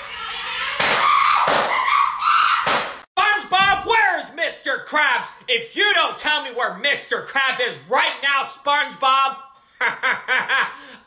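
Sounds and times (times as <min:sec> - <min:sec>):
man speaking in cartoon voice: 0:03.2 - 0:09.5.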